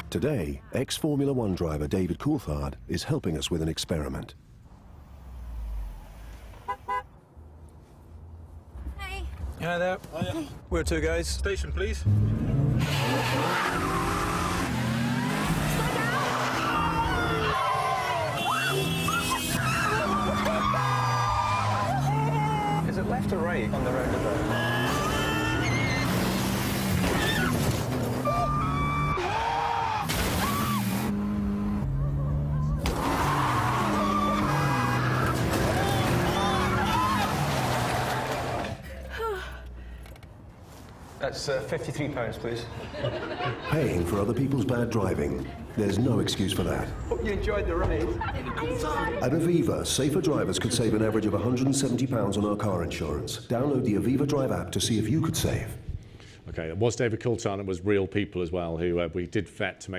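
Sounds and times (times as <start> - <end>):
car horn toots: 6.6 - 7.2, 18.2 - 20.2
low car rumble: 10.5 - 40.5
tyres squealing: 12.8 - 38.7.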